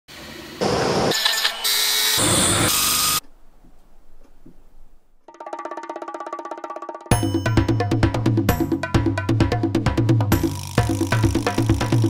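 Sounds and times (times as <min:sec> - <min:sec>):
power tool noises: 0:00.6 - 0:03.2.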